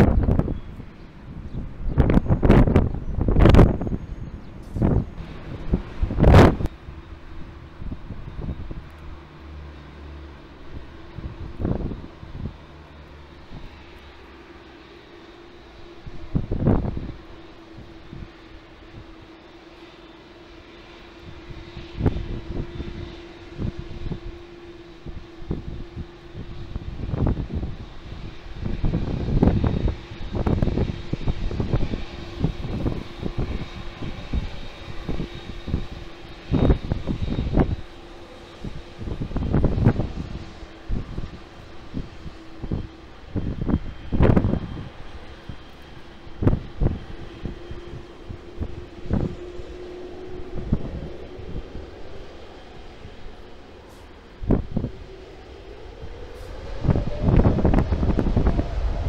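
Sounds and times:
wind buffeting microphone: 0.0s - 9.7s, 10.4s - 14.3s, 15.2s - 59.0s
jet engine hum with whine: 0.0s - 59.0s.

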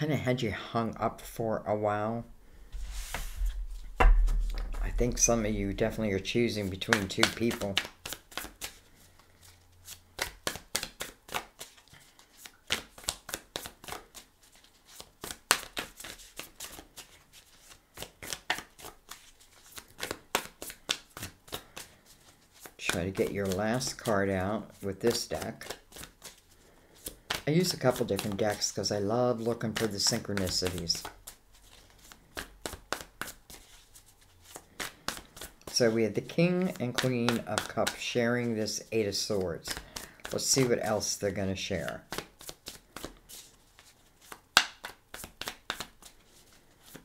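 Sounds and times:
cards being shuffled: 2.8s - 47.0s.

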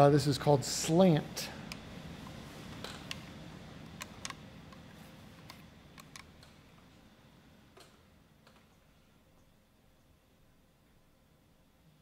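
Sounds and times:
low room hum: 0.0s - 12.0s.

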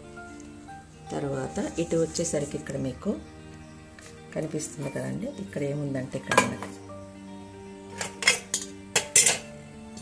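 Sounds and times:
background music with held notes: 0.0s - 10.0s
metal vessels clinking: 6.2s - 6.8s, 7.9s - 10.0s.

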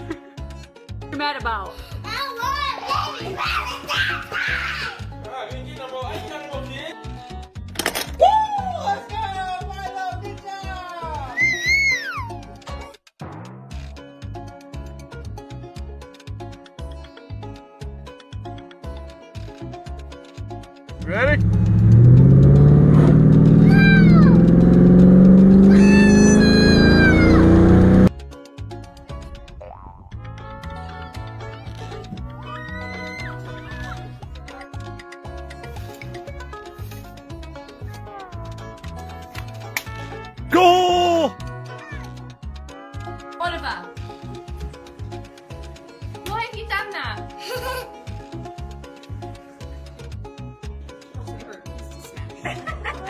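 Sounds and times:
background music: 0.0s - 53.0s
child shouting: 2.1s - 5.1s, 11.3s - 12.4s, 23.6s - 24.4s, 25.7s - 27.6s, 32.4s - 34.0s, 40.6s - 42.2s
baby crying: 11.3s - 12.4s, 25.7s - 27.5s
car engine accelerating: 21.1s - 28.1s
music with steady beat: 28.0s - 32.5s, 33.5s - 53.0s.

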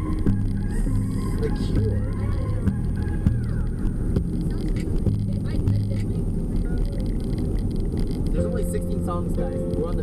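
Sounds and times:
faint voices: 0.0s - 10.0s
van road and engine rumble: 0.0s - 10.0s.

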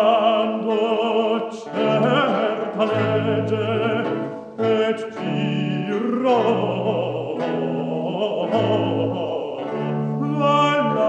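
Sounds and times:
operatic bass voice singing: 0.0s - 11.0s.

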